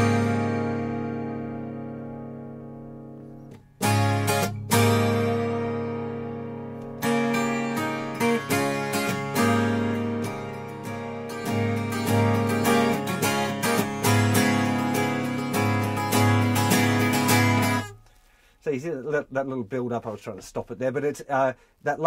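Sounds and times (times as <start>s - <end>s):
twelve-string acoustic guitar strumming: 0.0s - 18.5s.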